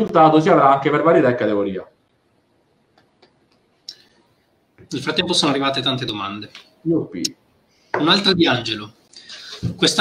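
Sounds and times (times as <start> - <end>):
man speaking: 4.8 - 7.4, 8.0 - 10.0.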